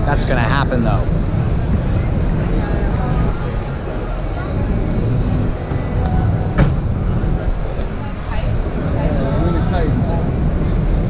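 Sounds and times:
exhibition hall crowd rumble: 0:00.0 - 0:11.0.

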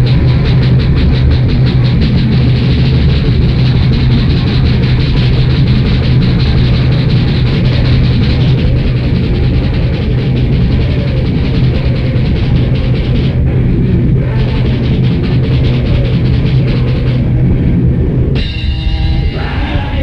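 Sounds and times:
live heavy rock band: 0:00.0 - 0:20.0
rapid cymbal strokes: 0:00.0 - 0:20.0.

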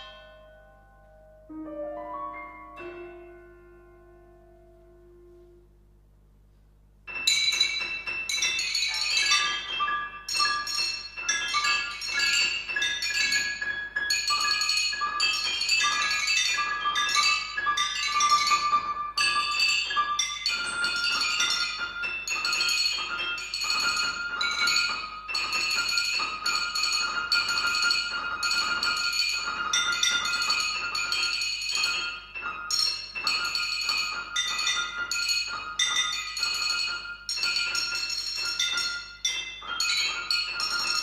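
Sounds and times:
bell-like struck notes: 0:00.0 - 0:05.7, 0:07.1 - 0:41.0.

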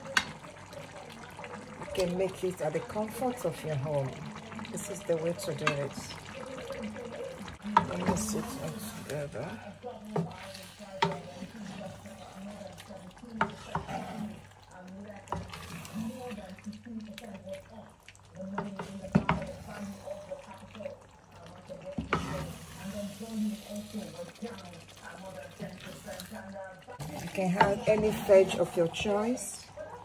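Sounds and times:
thick stew squelching and sloshing: 0:00.0 - 0:30.0.

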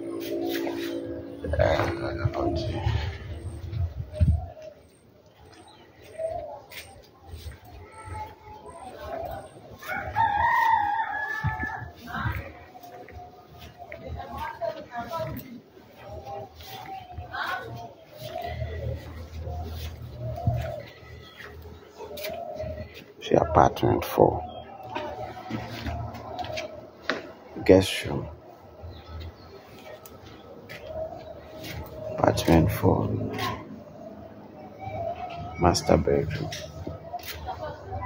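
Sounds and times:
steady low hum: 0:00.0 - 0:10.2
dove cooing: 0:00.0 - 0:38.0.

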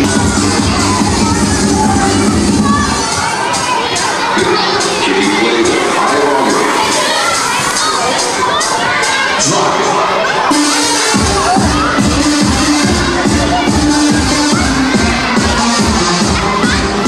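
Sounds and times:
children shouting and cheering: 0:00.0 - 0:17.0
loud dance music: 0:00.0 - 0:17.0.

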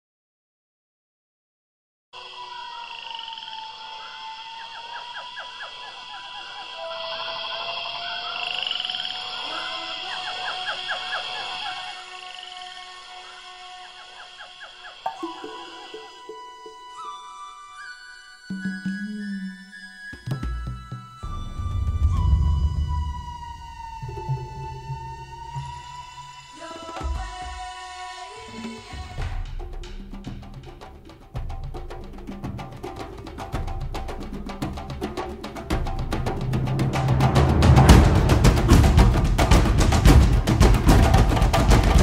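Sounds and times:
quick repeated frog calls: 0:02.2 - 0:16.9
high insect drone: 0:02.2 - 0:20.2, 0:21.3 - 0:29.2
long held animal call: 0:02.2 - 0:20.4, 0:21.0 - 0:28.9
high note sliding downward: 0:15.1 - 0:26.2
sustained mid note: 0:21.2 - 0:25.7
faint low drone: 0:21.2 - 0:26.0
low pulsing tone: 0:21.2 - 0:26.0.

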